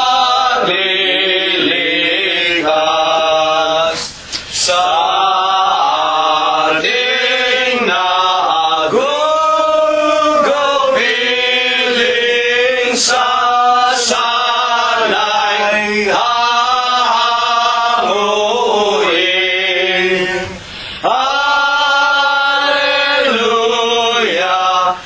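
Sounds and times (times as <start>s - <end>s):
voices singing a hymn: 0.0s - 25.0s.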